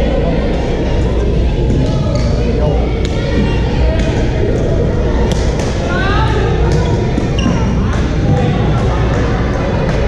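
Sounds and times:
sneakers squeaking on court floor: 0:06.7 - 0:08.0.

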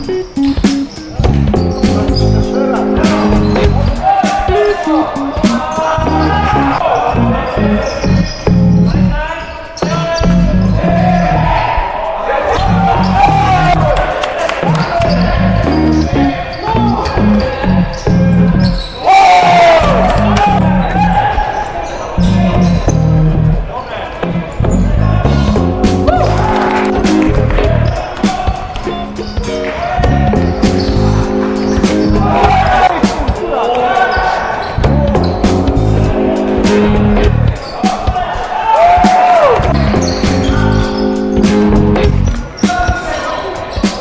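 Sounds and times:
music with heavy bass beat: 0:00.0 - 0:09.2, 0:24.7 - 0:33.5, 0:34.8 - 0:43.0.

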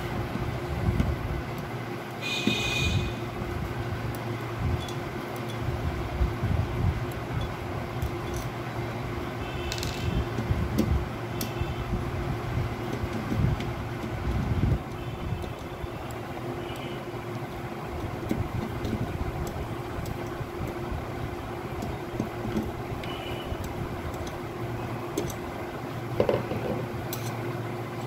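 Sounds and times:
mechanical background hum: 0:00.0 - 0:28.0
screwdriver clicks and squeaks: 0:04.8 - 0:05.7, 0:07.4 - 0:08.6, 0:09.6 - 0:10.4, 0:21.8 - 0:25.4.

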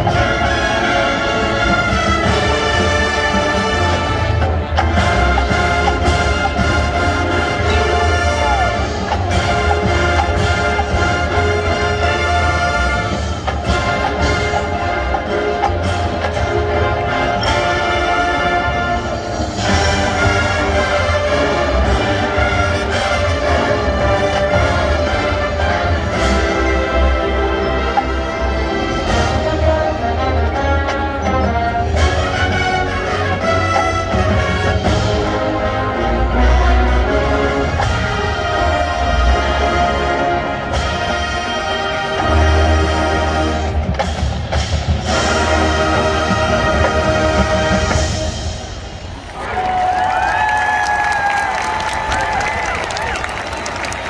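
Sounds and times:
brass chords: 0:00.0 - 0:49.1
marching band playing: 0:00.0 - 0:54.0.

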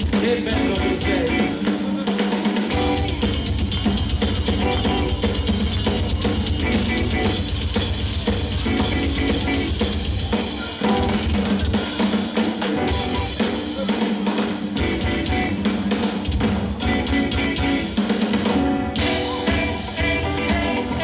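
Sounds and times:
bass line: 0:00.0 - 0:01.7, 0:02.7 - 0:11.8, 0:12.7 - 0:13.8, 0:14.7 - 0:21.0
rock band playing: 0:00.0 - 0:21.0
snare and bass-drum strokes: 0:00.0 - 0:21.0.

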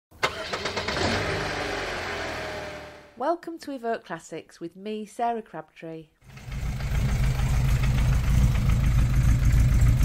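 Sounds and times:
car engine cranking and starting: 0:00.2 - 0:03.1, 0:06.3 - 0:10.0.

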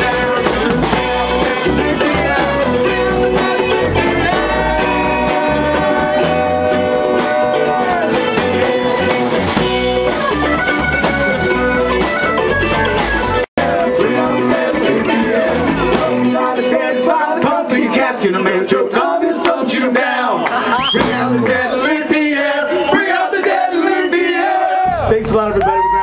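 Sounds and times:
electric guitar lead notes: 0:00.0 - 0:17.0
live band playing instrumental: 0:00.0 - 0:18.5.

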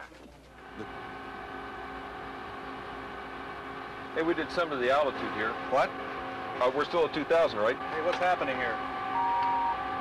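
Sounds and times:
airliner cockpit drone: 0:00.0 - 0:10.0
faint steady tones: 0:00.6 - 0:10.0.

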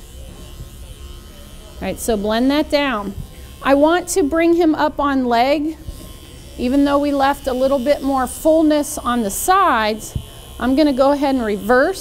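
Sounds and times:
electric pet clippers buzzing: 0:00.0 - 0:12.0.

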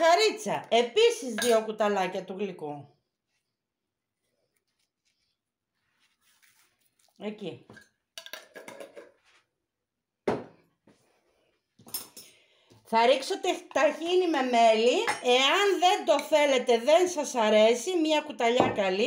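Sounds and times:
container knocking on counter: 0:10.2 - 0:10.6.

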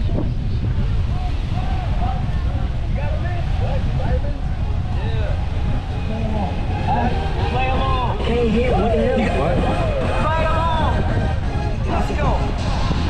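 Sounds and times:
low rumble: 0:00.0 - 0:13.0
people talking: 0:01.1 - 0:12.7.

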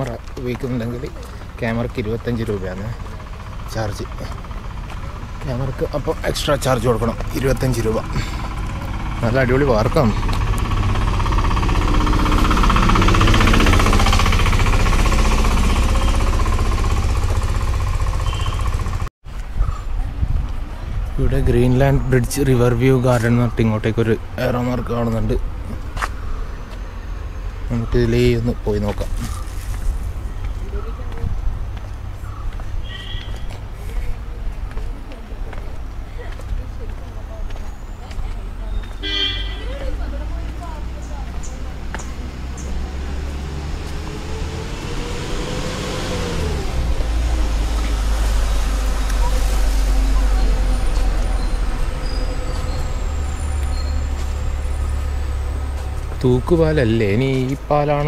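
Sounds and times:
vehicle engine knocking clatter: 0:00.0 - 0:19.1
short high horn toot: 0:32.8 - 0:33.5, 0:39.0 - 0:39.7.

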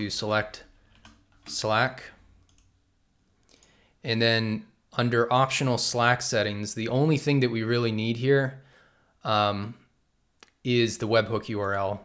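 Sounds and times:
faint computer mouse clicks: 0:03.4 - 0:03.8.

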